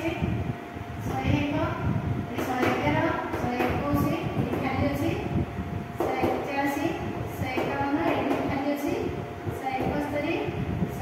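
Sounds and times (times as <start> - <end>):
woman speaking: 0.0 - 0.4, 1.0 - 5.4, 6.0 - 11.0
low background rumble: 0.0 - 11.0.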